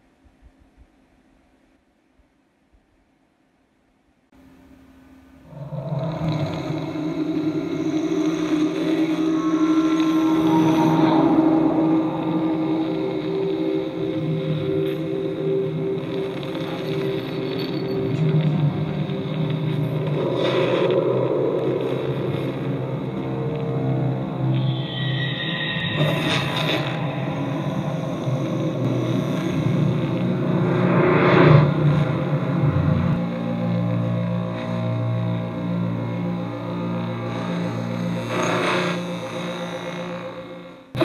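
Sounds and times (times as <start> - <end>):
ambient drone of low tones: 4.4 - 41.0.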